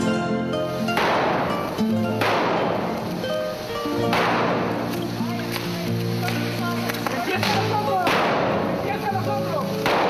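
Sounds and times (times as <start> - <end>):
firecracker bursts: 0.0 - 10.0
music with sustained notes: 0.0 - 10.0.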